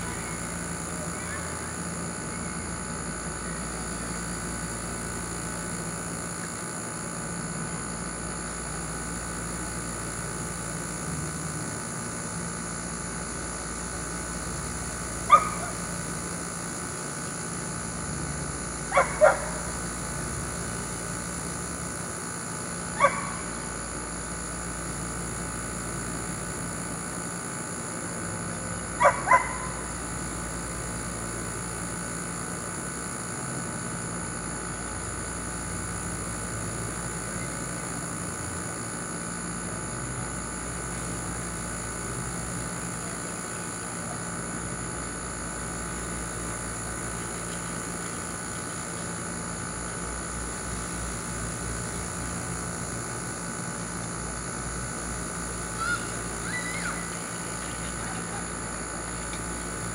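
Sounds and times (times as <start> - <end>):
steady background hum: 0.0 - 59.9
dog barking: 15.3 - 15.8, 18.9 - 19.7, 23.0 - 23.5, 29.0 - 29.8.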